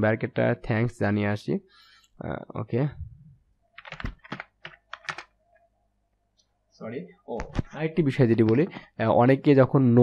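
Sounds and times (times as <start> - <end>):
computer clicks and taps: 3.7 - 5.6.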